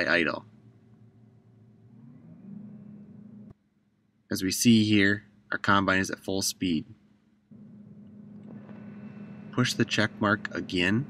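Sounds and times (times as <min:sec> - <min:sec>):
combine engine humming: 0:07.5 - 0:11.0.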